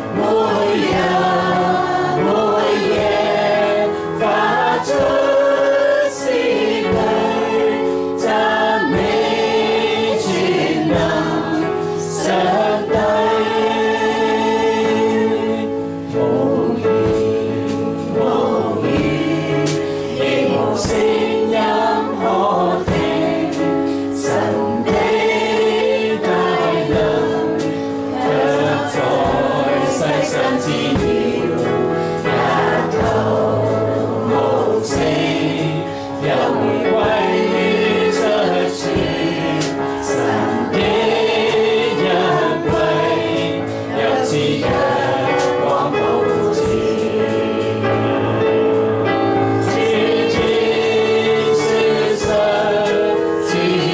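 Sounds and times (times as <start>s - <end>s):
electronic keyboard: 0.0s - 53.9s
group singing worship song: 0.0s - 53.9s.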